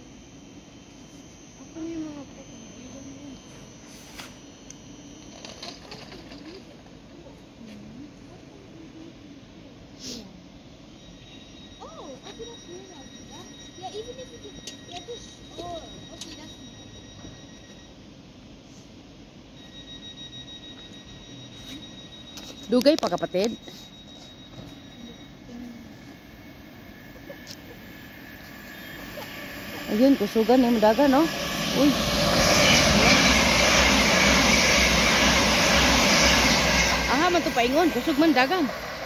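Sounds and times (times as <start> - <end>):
electric train rumble: 0.0 - 39.0
high-pitched train whine: 0.0 - 39.0.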